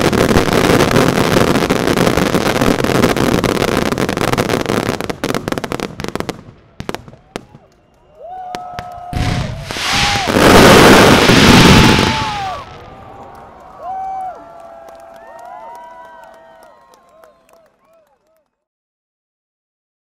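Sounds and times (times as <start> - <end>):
firework cracks: 0.0 - 14.2
spectators whooping: 7.1 - 18.4.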